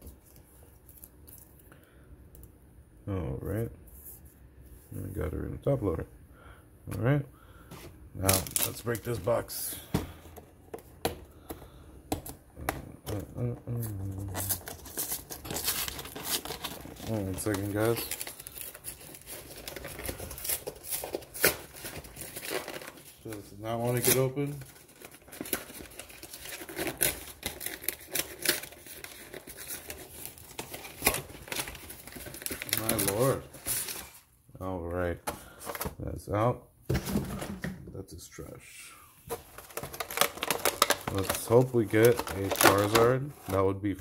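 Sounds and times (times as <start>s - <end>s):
cardboard packaging crinkling: 8.2s - 34.3s, 39.3s - 43.7s.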